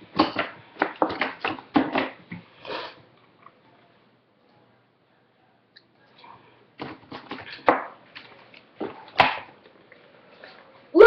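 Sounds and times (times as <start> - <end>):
person sniffing: 2.6 - 3.0.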